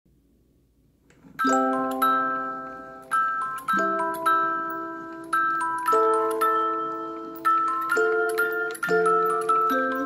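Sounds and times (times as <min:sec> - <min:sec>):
music box bell-like chord: 0:01.4 - 0:10.0.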